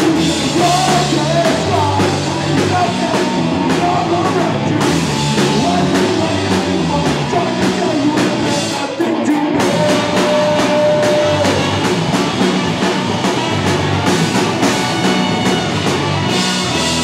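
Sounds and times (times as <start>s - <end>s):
live ska-punk band playing: 0.0s - 17.0s.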